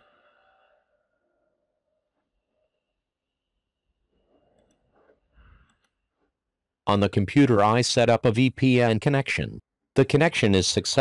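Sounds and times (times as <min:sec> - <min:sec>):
synthesized voice speaking: 0:06.9 - 0:11.0.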